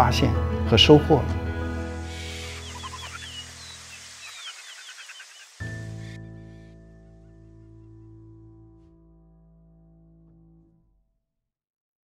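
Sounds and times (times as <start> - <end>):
sustained music tones: 1.4 - 7.9
small birds chirping: 1.8 - 6.6.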